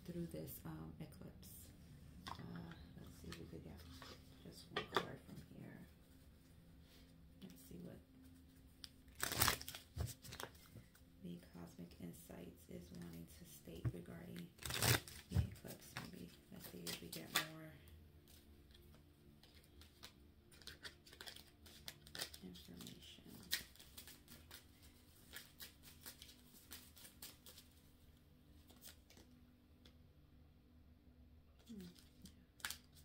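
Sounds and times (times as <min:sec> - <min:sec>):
cards being shuffled: 0:08.8 - 0:11.0, 0:14.5 - 0:17.6, 0:18.2 - 0:27.9, 0:28.6 - 0:29.4, 0:31.6 - 0:33.0.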